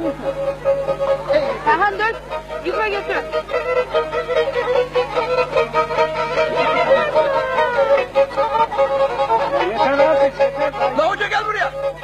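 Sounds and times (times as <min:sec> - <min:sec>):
bowed lyre dance tune: 0:00.0 - 0:12.0.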